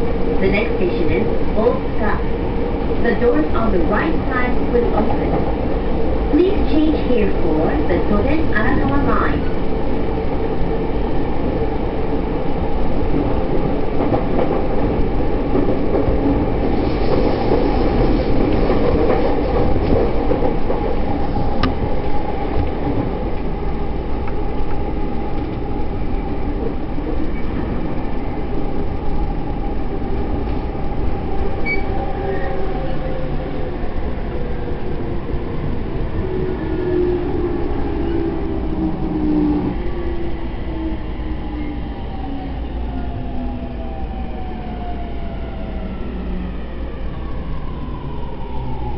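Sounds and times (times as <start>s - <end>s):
train wheels rumbling on rails: 0.0s - 48.9s.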